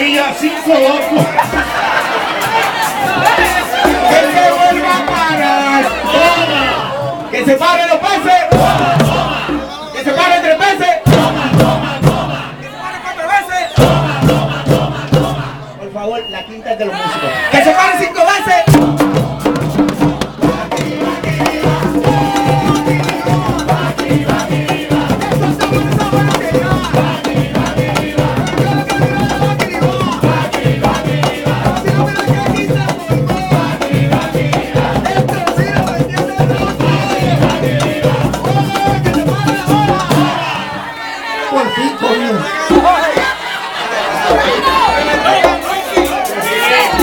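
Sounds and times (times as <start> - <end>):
frame drums beating fast: 0.0 - 6.9, 8.0 - 12.6, 13.8 - 15.6, 18.3 - 40.9, 42.6 - 47.0
voices singing: 0.0 - 47.0.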